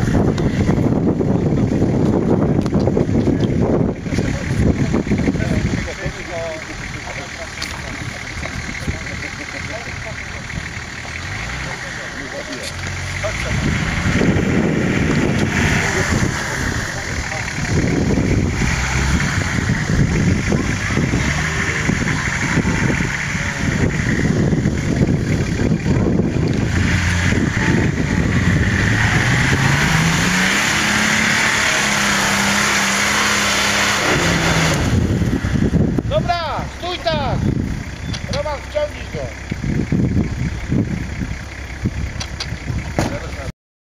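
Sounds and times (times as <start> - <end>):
off-road vehicle engine revving: 0.0 - 43.5.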